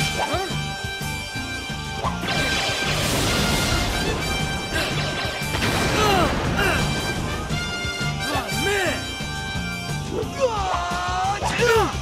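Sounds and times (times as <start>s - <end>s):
action music: 0.0s - 12.0s
crashing blast sound effect: 2.2s - 7.5s.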